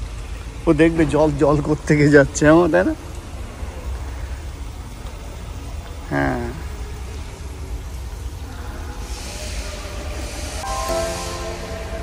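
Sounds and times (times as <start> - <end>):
low rumble with hiss: 0.0 - 12.0
background music: 10.6 - 12.0.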